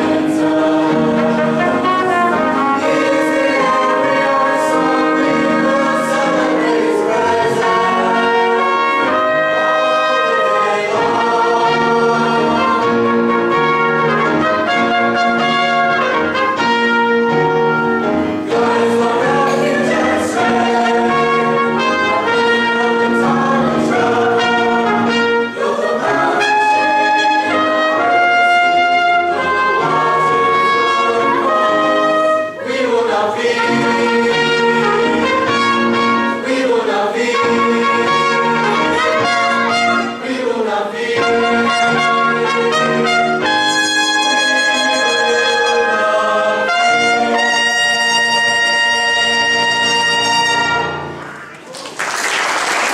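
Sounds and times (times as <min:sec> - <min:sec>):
mixed choir singing an anthem: 0:00.0 - 0:51.2
instrumental accompaniment: 0:00.0 - 0:51.8.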